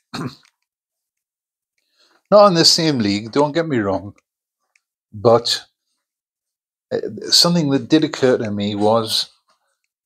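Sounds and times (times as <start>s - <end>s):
man coughing: 0.1s - 0.5s.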